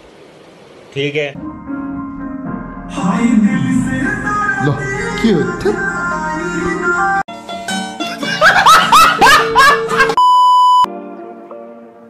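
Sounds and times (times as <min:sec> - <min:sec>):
soft music with plucked notes: 0:01.4 - 0:10.2, 0:10.9 - 0:12.0.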